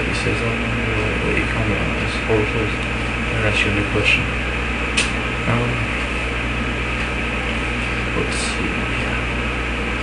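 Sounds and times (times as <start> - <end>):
steady hum with hiss: 0.0 - 10.0.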